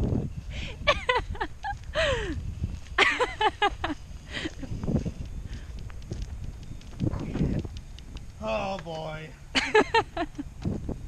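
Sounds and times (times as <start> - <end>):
footsteps on asphalt: 0.0 - 11.0
wind rumble on microphone: 0.0 - 11.0.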